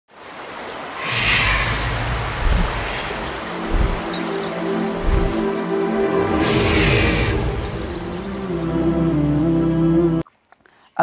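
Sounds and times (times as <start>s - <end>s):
whoosh: 1.0s - 4.2s
held low chord: 7.3s - 10.2s.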